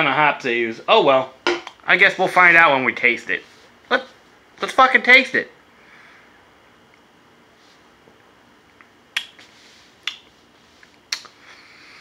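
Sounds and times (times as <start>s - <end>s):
lips smacking: 8.7s - 11.4s.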